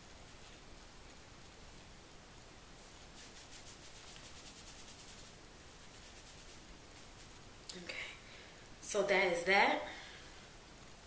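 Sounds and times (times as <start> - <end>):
fingertips rubbing scalp through hair: 2.8 - 7.4.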